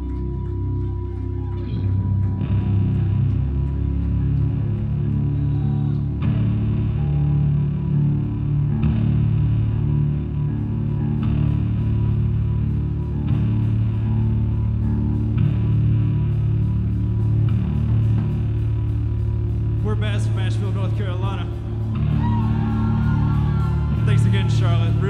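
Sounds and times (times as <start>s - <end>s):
electric guitars and bass riffs: 0.0s - 25.0s
drums: 11.2s - 25.0s.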